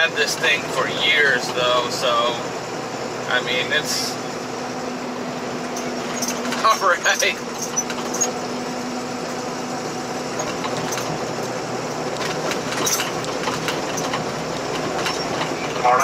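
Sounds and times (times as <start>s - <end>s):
car road and engine noise: 0.0s - 16.0s.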